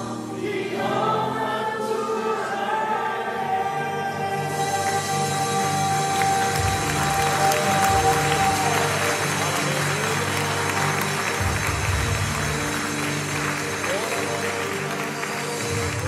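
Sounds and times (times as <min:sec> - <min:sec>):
keyboard: 0:00.0 - 0:16.0
worship band playing: 0:00.0 - 0:16.0
acoustic guitar: 0:03.3 - 0:16.0.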